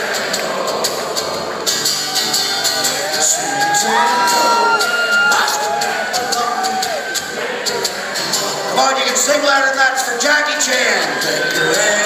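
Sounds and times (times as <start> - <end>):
audience singing along: 0.0 - 12.0.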